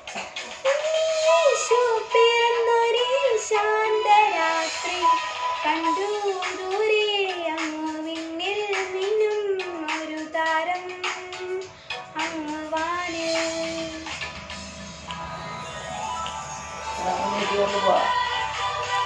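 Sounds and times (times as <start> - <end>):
girl singing: 0.6 - 14.3
backing track with percussion: 4.7 - 19.0.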